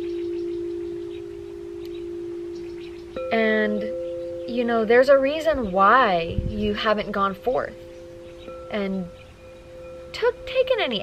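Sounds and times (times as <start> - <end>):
singing bowl ringing: 0.0 - 11.0.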